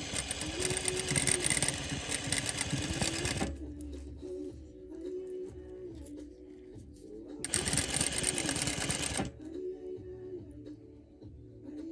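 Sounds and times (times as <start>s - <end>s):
sewing machine running fast: 0.0s - 3.5s, 7.4s - 9.3s.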